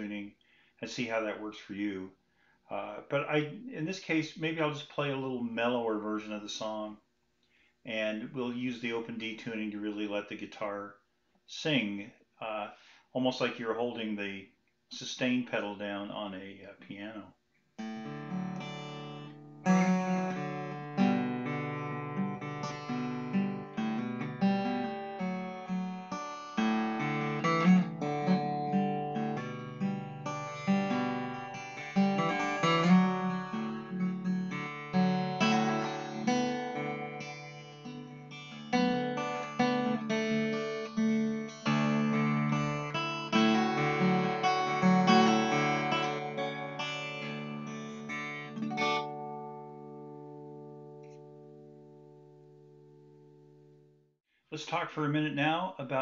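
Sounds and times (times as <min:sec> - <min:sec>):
fingerpicked acoustic guitar: 0:17.8 - 0:53.8.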